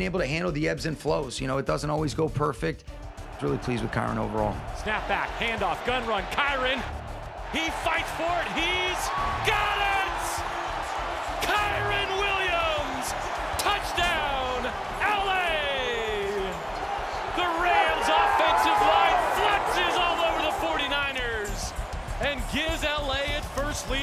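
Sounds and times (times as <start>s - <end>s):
background music: 0.0s - 24.0s
people shouting and whooping: 7.4s - 24.0s.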